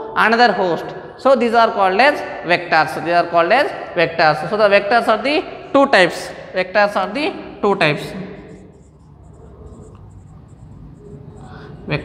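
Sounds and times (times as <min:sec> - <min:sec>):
marker pen on whiteboard: 0:06.0 - 0:12.0.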